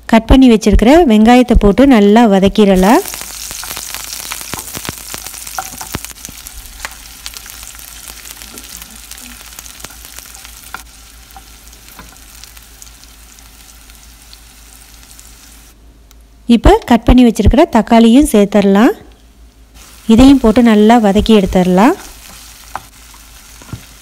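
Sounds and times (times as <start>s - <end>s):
food sizzling in hot oil: 2.7s - 15.8s, 19.8s - 24.0s.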